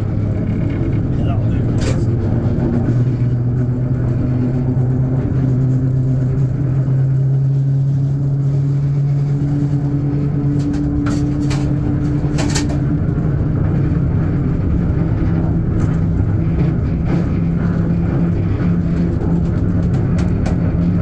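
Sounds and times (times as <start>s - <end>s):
locomotive diesel engine running: 0.0s - 21.0s.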